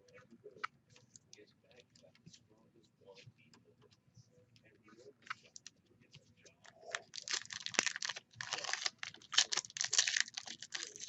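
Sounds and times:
foil wrapper crinkling and tearing: 6.9s - 11.0s.

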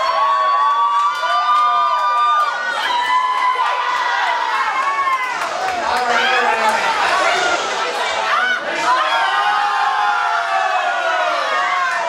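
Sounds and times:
crowd cheering and squealing: 0.0s - 12.0s.

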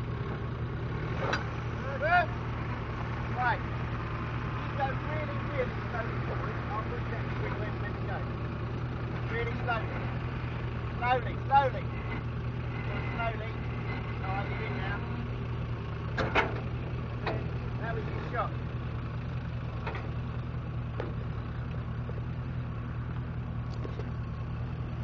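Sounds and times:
vehicle engine at low revs: 0.0s - 25.0s.

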